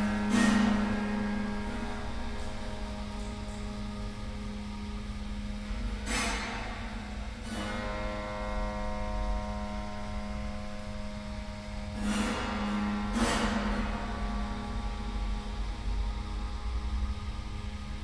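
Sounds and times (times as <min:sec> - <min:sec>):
piano strings ringing: 0:00.0 - 0:17.7
electrical hum: 0:00.0 - 0:18.0.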